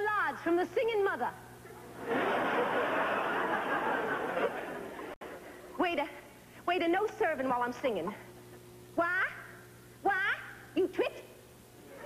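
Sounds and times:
audience laughing: 1.8s - 5.6s.

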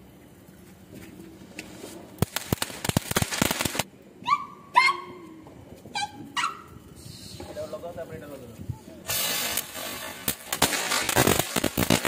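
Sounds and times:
firecrackers popping and crackling: 1.0s - 3.9s, 9.0s - 12.0s.

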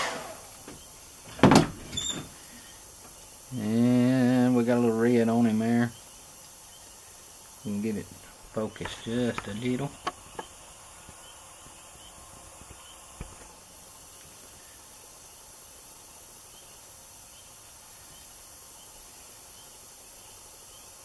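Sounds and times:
faint hiss: 0.0s - 21.0s.

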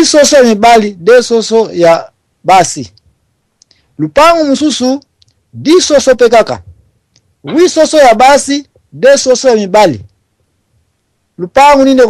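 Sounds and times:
faint clicks: 2.9s - 3.8s, 5.2s - 5.4s, 7.1s - 7.3s.

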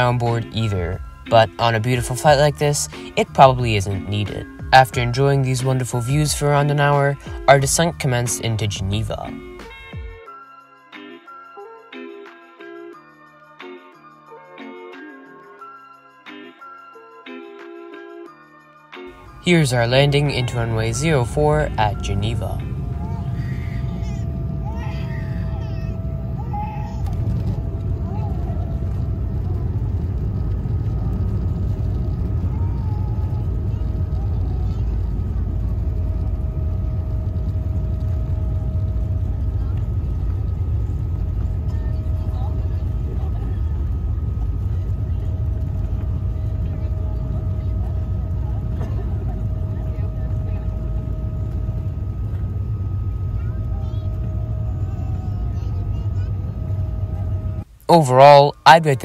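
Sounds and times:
airliner cabin rumble: 0.0s - 9.9s, 19.1s - 59.0s
thin steady whine: 19.1s - 59.0s
low tone: 19.2s - 59.0s.

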